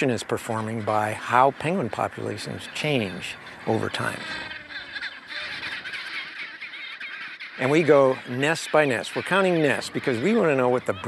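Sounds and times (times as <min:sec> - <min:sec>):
penguin colony calling: 0:00.0 - 0:11.0.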